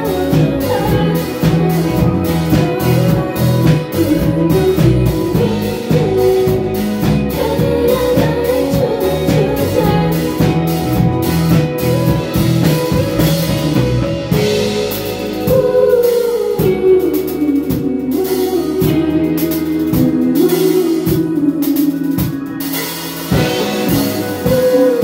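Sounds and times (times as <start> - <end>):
drum kit steady beat: 0.0 - 25.0
electric guitars playing melody: 0.0 - 25.0.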